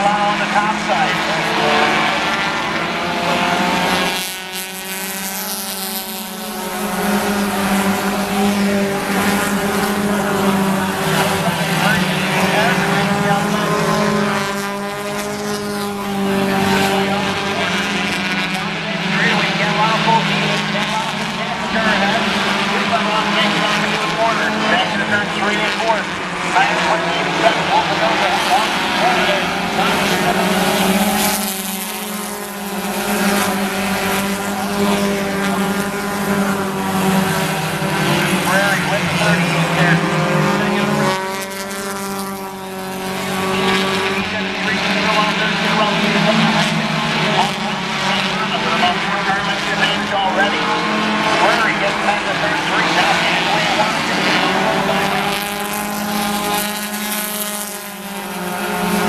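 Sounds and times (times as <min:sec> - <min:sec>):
race car engines passing: 0:00.0 - 0:59.0
steady engine drone: 0:00.0 - 0:59.0.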